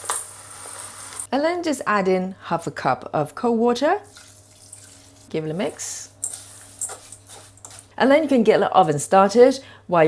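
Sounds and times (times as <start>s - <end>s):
spatula scraping metal bowl: 4.1s - 8.0s.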